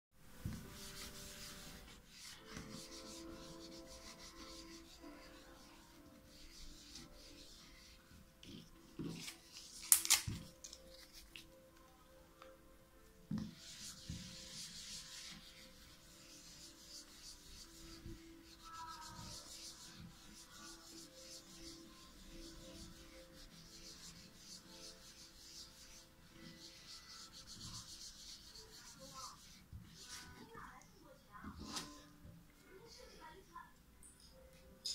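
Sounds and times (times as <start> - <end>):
wipe rubbing phone: 0.4 - 9.8, 13.4 - 30.6.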